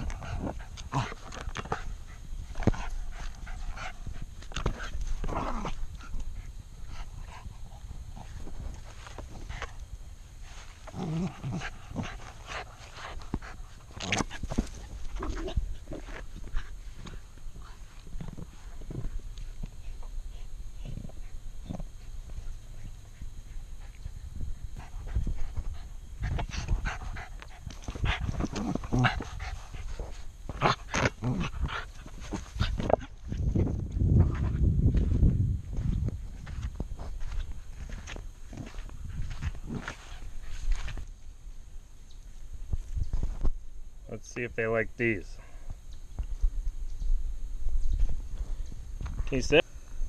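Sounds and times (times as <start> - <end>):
dogs vocalizing during play: 0.0 - 9.8, 10.4 - 34.5.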